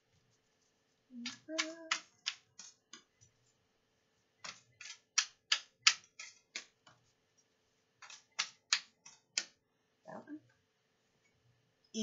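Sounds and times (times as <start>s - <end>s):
cards being shuffled: 4.4s - 7.0s.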